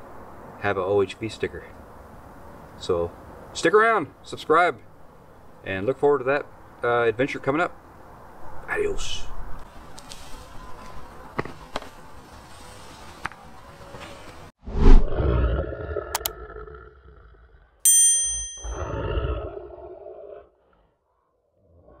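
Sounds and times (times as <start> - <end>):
loud roar: 15.0 - 17.8
bright bell-like ding: 17.9 - 18.9.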